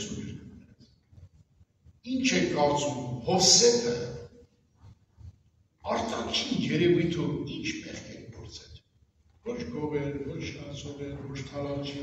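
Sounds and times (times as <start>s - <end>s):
man preaching: 0.0s - 0.5s, 2.0s - 4.4s, 5.8s - 8.8s, 9.4s - 12.0s.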